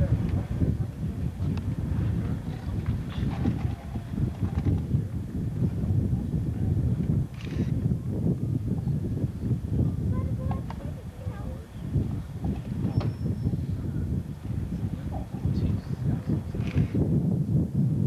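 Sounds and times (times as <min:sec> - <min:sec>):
faint voices: 0:00.0 - 0:17.0
wind buffeting microphone: 0:00.0 - 0:18.0.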